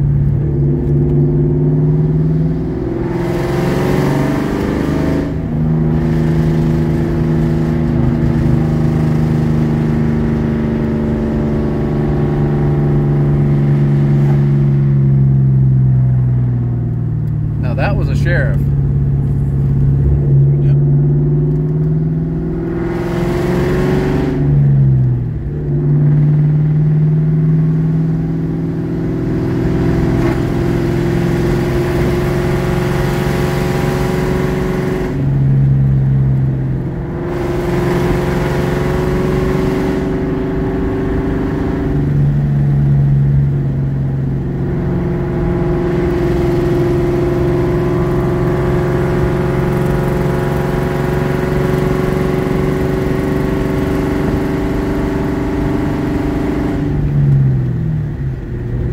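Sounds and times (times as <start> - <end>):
car engine heard from cabin: 0.0 - 58.9.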